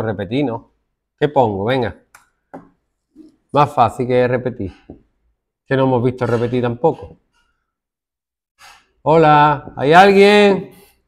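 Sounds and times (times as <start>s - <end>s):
person speaking: 9.0s - 10.9s.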